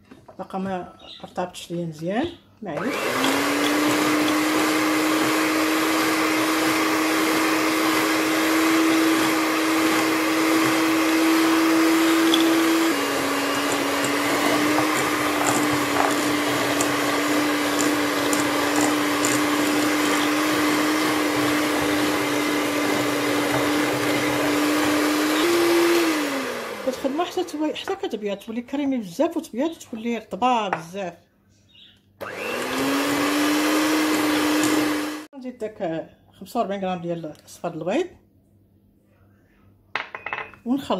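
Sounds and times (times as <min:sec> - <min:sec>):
electric hand mixer running: 0:02.8 - 0:27.8, 0:32.2 - 0:35.3.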